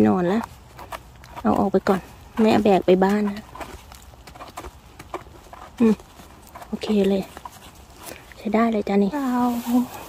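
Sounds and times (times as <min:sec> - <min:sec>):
knife scraping mushroom stem: 0:00.0 - 0:08.4.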